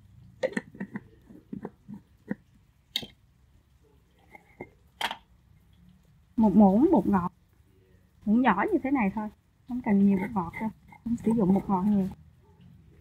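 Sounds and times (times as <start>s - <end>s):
spoon scraping jars: 0.4s - 3.2s, 4.1s - 5.2s, 9.8s - 12.2s.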